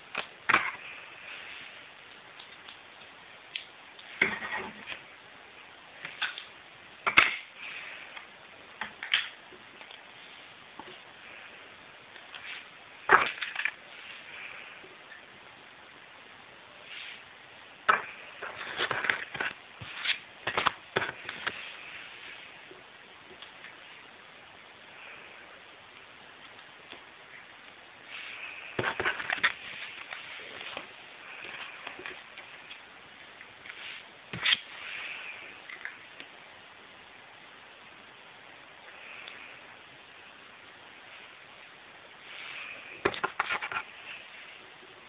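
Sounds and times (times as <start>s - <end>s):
small objects clicking and knocking: 6.0s - 10.0s, 12.2s - 13.8s, 17.8s - 21.7s, 28.1s - 34.9s, 42.3s - 44.1s.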